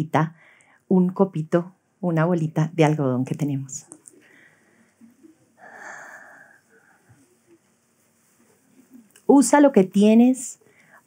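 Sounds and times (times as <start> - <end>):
soft breathy exhale: 5.6 - 7.3.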